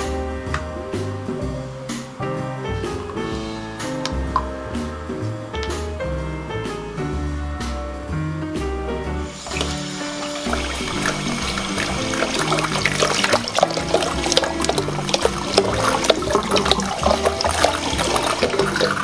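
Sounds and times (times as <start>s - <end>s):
background music with bass: 0.0s - 19.0s
tap water pouring into basin: 9.4s - 19.0s.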